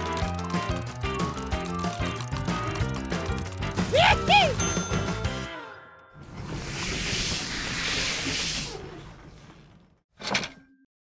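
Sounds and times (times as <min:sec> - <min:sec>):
hissing sound effect: 0:06.4 - 0:08.8.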